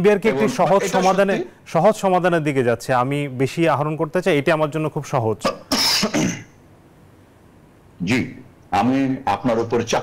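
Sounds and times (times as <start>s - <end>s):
man clearing throat: 5.4s - 6.5s.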